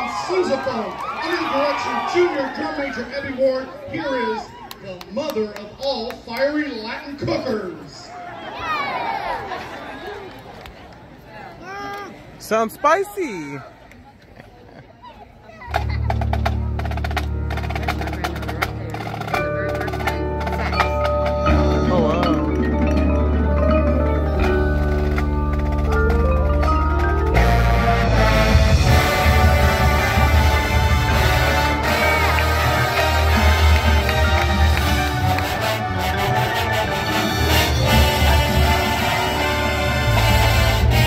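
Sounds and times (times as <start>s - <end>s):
marching band playing: 15.7s - 41.0s
percussion playing quick rhythm: 15.7s - 41.0s
marimbas: 15.8s - 28.2s
horns sustained notes: 21.3s - 41.0s.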